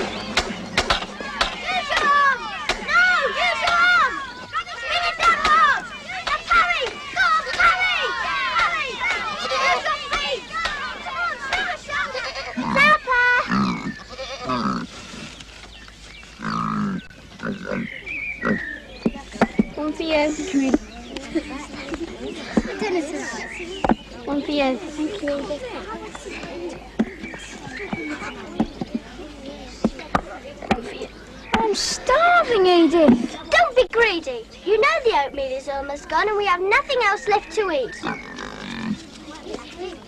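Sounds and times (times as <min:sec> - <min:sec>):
wooden staves knocking: 0:00.0 - 0:04.0, 0:19.0 - 0:19.8
children's voices: 0:00.0 - 0:15.4, 0:16.8 - 0:40.0
pig grunting and squealing: 0:12.4 - 0:15.0, 0:16.4 - 0:18.8, 0:38.0 - 0:39.1.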